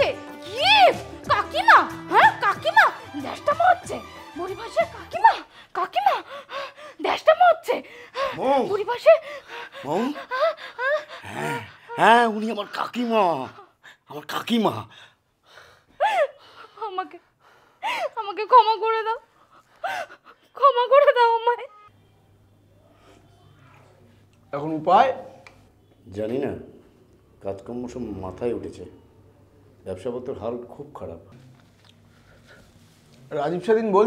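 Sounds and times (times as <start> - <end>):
woman sobbing: 8.1 - 12.5, 16.0 - 17.2
woman gasping distressed cries: 9.3 - 12.0.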